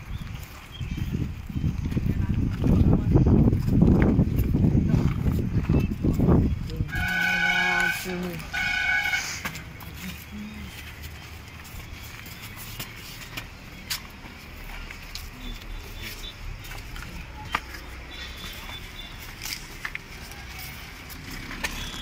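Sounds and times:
vehicle horn honking: 0:06.9 - 0:09.6, 0:21.7 - 0:22.0.

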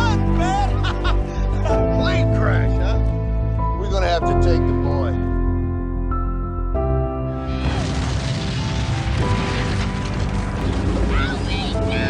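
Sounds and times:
trailer music with held tones: 0:00.0 - 0:12.0
explosion: 0:07.4 - 0:12.0.

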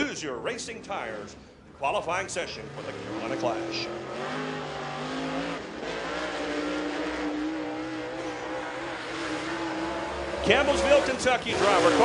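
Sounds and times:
race car engine running hard: 0:02.4 - 0:12.0.

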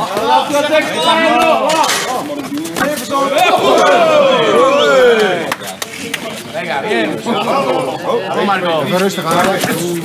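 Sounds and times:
men shouting: 0:03.0 - 0:05.5.

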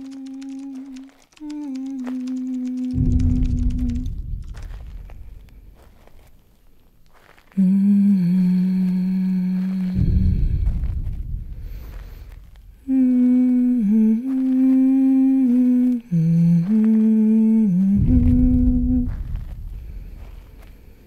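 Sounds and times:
person humming a slow melody: 0:00.0 - 0:04.2, 0:07.5 - 0:11.0, 0:12.8 - 0:20.2
deep low boom: 0:03.0 - 0:06.6, 0:09.6 - 0:15.7, 0:17.8 - 0:21.0.

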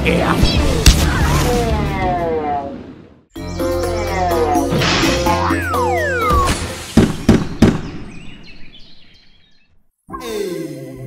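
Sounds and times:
cartoon music with pitch glides: 0:03.4 - 0:06.8.

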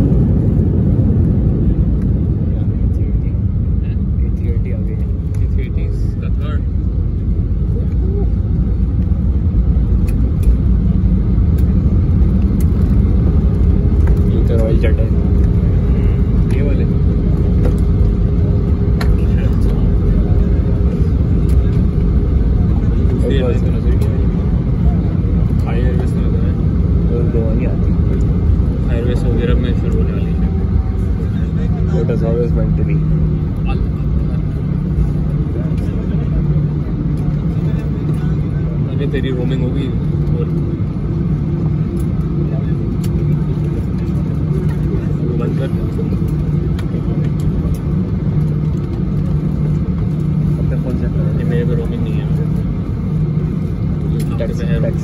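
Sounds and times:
aircraft cabin rumble: 0:00.0 - 0:55.0
faint passenger voices: 0:00.0 - 0:55.0.

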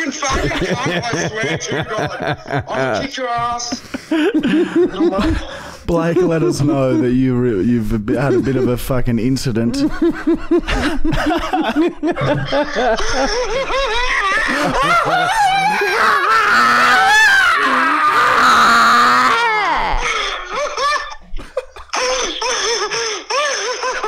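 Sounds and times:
men laughing hard: 0:00.0 - 0:06.9, 0:09.7 - 0:24.0.

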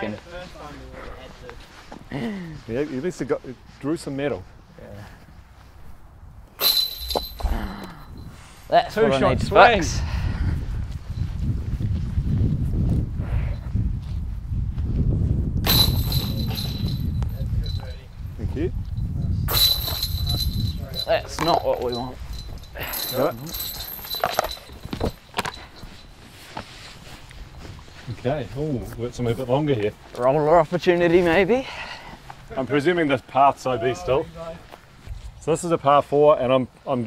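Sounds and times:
wind rumbling on microphone: 0:07.4 - 0:26.2.

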